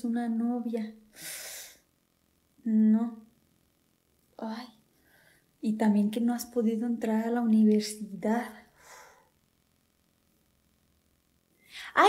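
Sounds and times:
woman speaking: 5.6 - 8.7, 11.8 - 12.0
woman breathing in: 8.8 - 9.4.

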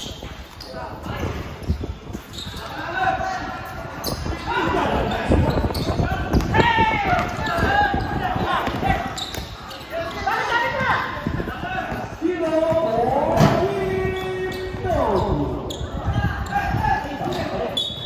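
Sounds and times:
players calling out: 2.2 - 18.0.

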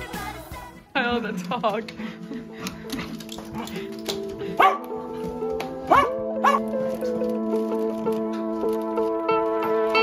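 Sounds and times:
background music with sustained notes: 0.0 - 10.0
dog barking: 4.6 - 4.9, 5.9 - 6.7.

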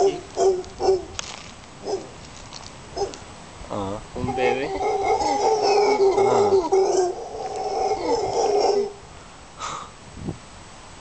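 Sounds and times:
howler monkeys howling: 4.2 - 9.0.

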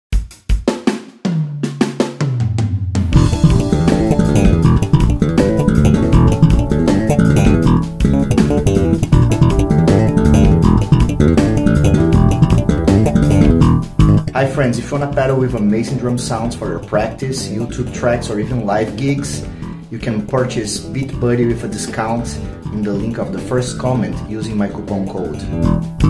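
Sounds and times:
drum beat: 0.1 - 14.4
electric bass slap riff: 3.1 - 14.5, 15.2 - 19.9, 25.4 - 26.0.

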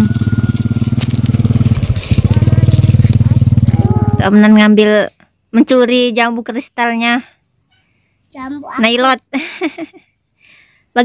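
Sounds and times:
small engine running: 0.0 - 4.4.

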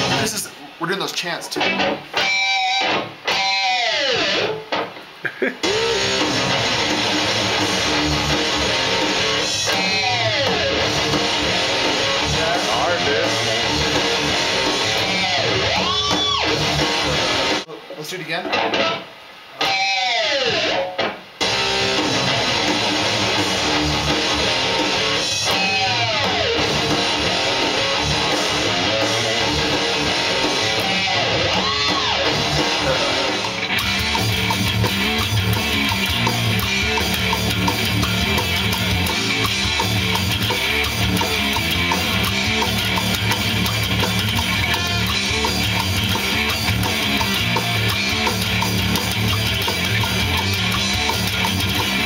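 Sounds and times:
rock backing track: 0.0 - 52.0
electric guitar sliding note: 19.6 - 52.0.

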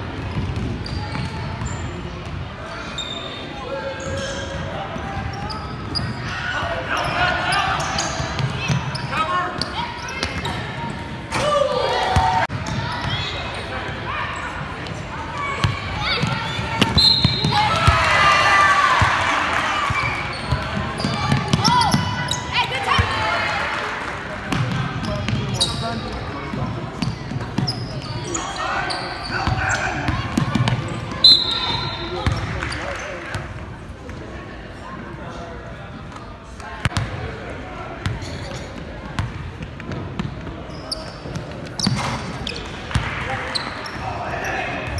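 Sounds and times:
sneakers squeaking on court: 0.2 - 11.2, 12.2 - 18.2, 19.8 - 23.1, 24.5 - 33.5, 38.0 - 44.9.

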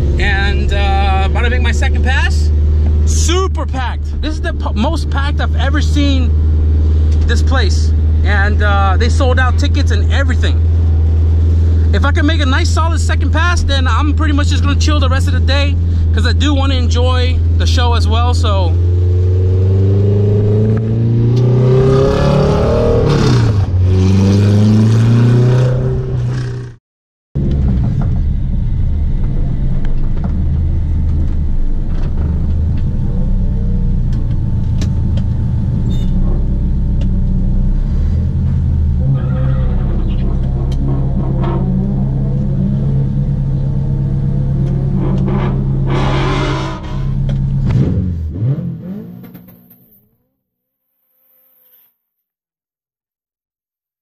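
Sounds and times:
car engine revving: 0.0 - 26.8, 27.4 - 50.2.

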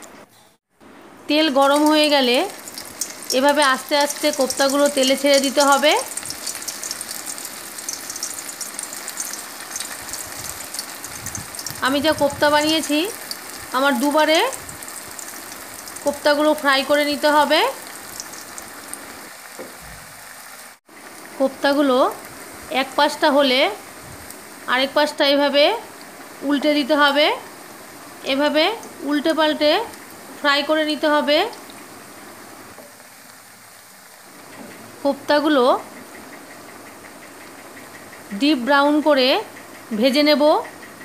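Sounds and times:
food sizzling in hot oil: 1.3 - 41.0.

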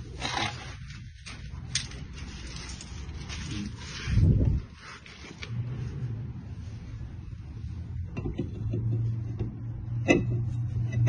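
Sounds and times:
scraping rustle: 0.0 - 7.1
low steady hum: 0.0 - 11.0.

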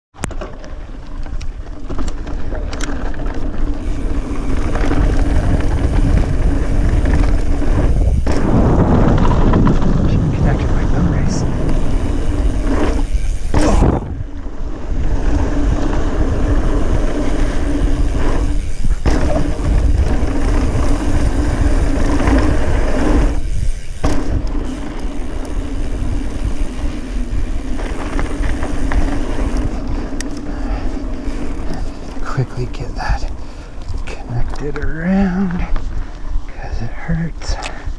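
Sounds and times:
constant hum: 0.2 - 37.7
bike tyres rattling on rocky trail: 0.2 - 37.9.

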